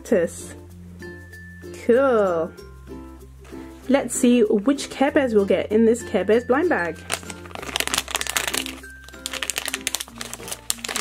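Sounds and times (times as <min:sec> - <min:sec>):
background music with bass line: 0:00.0 - 0:08.2
foil bag crinkling and tearing: 0:06.9 - 0:11.0.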